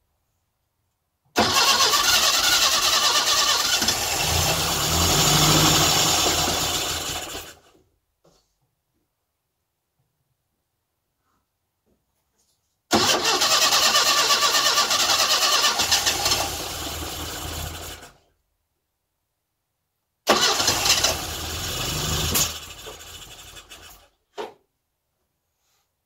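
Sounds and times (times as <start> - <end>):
car engine cranking: 1.4 - 7.6, 13.0 - 18.1, 20.3 - 24.0.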